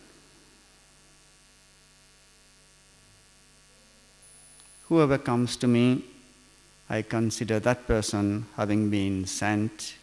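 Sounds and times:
faint electrical mains hum: 0:00.0 - 0:10.0
man's voice: 0:04.9 - 0:06.1, 0:06.9 - 0:10.0.

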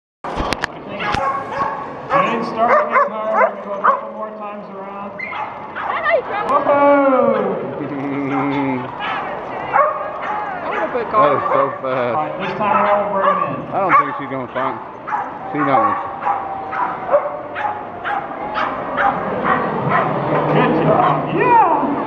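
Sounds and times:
crowd chatter: 0:00.3 - 0:22.0
dogs yipping and barking: 0:00.9 - 0:04.4, 0:05.2 - 0:06.5, 0:08.2 - 0:21.3.

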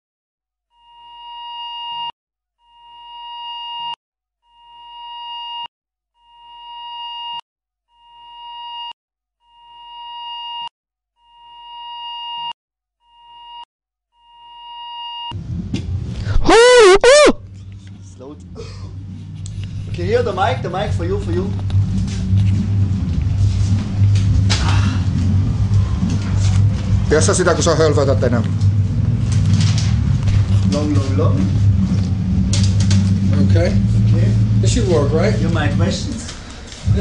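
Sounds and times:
low room rumble: 0:15.4 - 0:16.5, 0:17.4 - 0:37.0
pitched electronic tone: 0:16.4 - 0:17.4.

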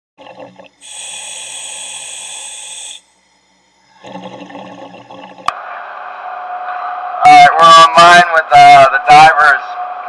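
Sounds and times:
diver breathing through regulator: 0:00.8 - 0:03.0.

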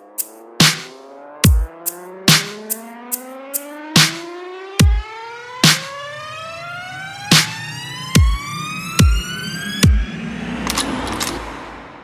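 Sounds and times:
dubstep track: 0:00.0 - 0:10.2
kick drum: 0:01.4 - 0:03.2, 0:04.0 - 0:05.8, 0:08.2 - 0:08.4, 0:09.0 - 0:09.2, 0:09.8 - 0:10.0.

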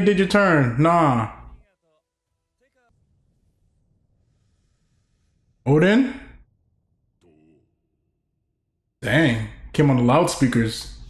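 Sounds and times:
man speaking: 0:00.0 - 0:02.0, 0:05.6 - 0:06.4, 0:09.0 - 0:11.0.

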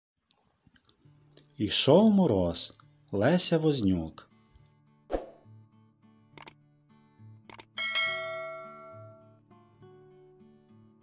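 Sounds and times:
soft guitar music: 0:00.5 - 0:11.0
quick double clicks: 0:06.4 - 0:06.6, 0:07.5 - 0:07.7
bright bell ding: 0:07.8 - 0:09.4.

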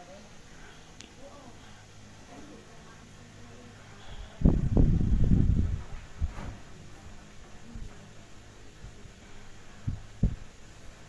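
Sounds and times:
low steady hum: 0:00.0 - 0:11.0
low thumps: 0:09.8 - 0:10.5.

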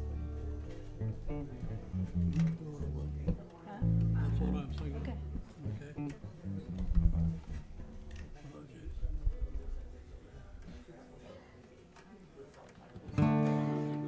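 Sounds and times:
acoustic guitar plucked notes: 0:00.0 - 0:07.5, 0:13.1 - 0:14.0
deep bass notes: 0:00.0 - 0:07.7
background talk: 0:00.0 - 0:14.0.

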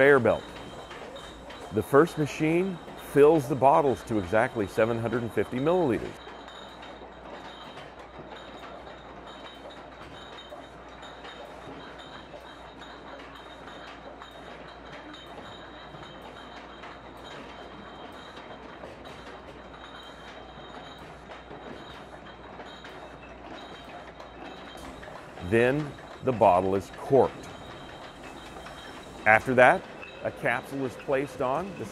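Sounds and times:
glass bottles clinking: 0:00.0 - 0:31.9
machinery hum and whine: 0:00.0 - 0:31.9.

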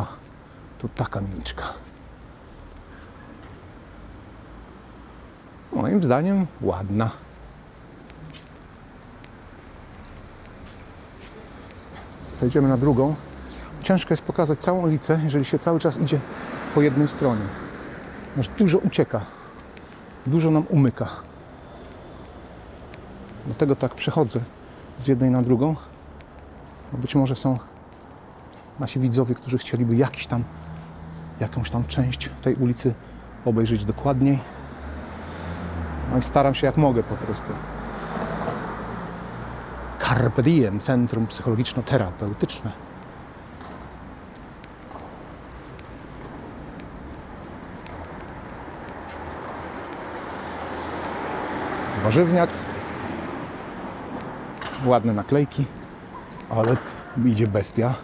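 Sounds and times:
city traffic rumble: 0:00.0 - 0:58.0
footsteps on pavement: 0:00.0 - 0:58.0.

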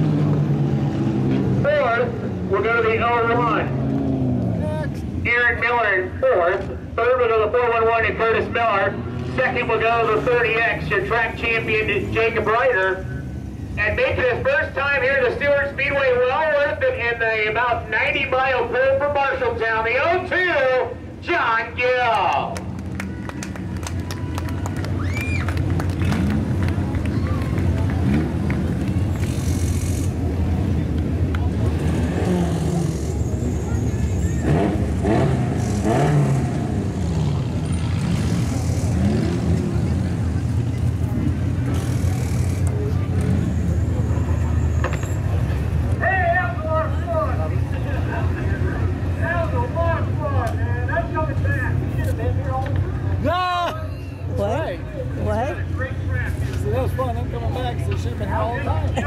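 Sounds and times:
race car engines idling: 0:00.0 - 0:59.0
people's voices: 0:01.6 - 0:59.0.

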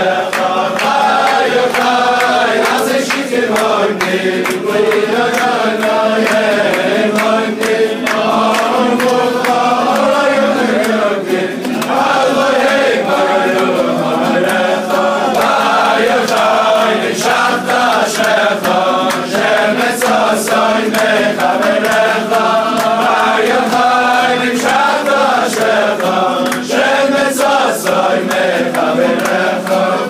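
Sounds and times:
hand claps: 0:00.0 - 0:30.0
men singing together: 0:00.0 - 0:30.0.

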